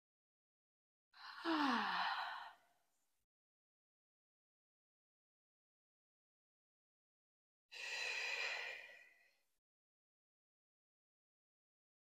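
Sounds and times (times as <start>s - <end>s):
woman sighing: 1.2s - 2.5s.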